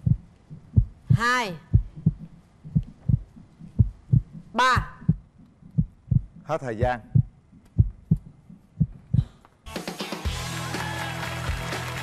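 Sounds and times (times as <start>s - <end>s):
heartbeat thumps: 0.0s - 9.4s.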